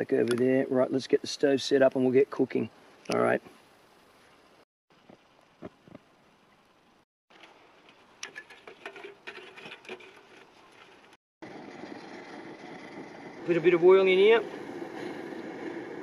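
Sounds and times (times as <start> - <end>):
stove flame rushing: 8.2 - 16.0.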